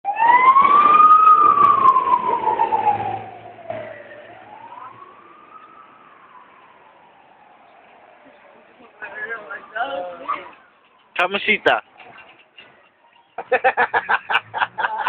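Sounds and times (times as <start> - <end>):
emergency vehicle siren wailing: 0.0 - 15.0.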